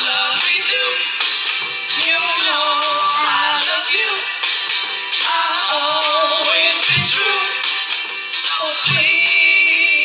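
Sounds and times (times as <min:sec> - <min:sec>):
backing music track: 0:00.0 - 0:10.0.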